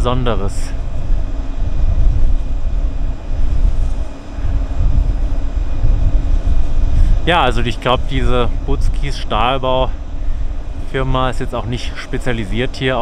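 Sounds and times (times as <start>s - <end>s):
gusty wind on microphone: 0.0s - 13.0s
wind turbine hum: 0.0s - 13.0s.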